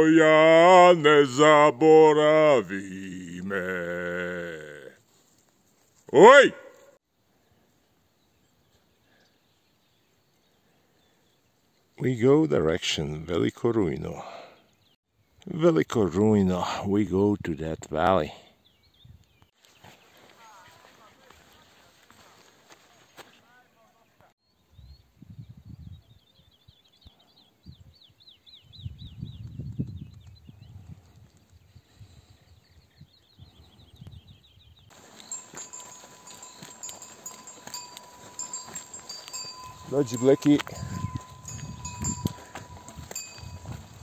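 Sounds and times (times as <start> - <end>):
wind gusts on microphone: 24.7 - 26.2, 28.6 - 44.0
faint high chirping: 34.9 - 44.0
thin ringing tone: 34.9 - 44.0.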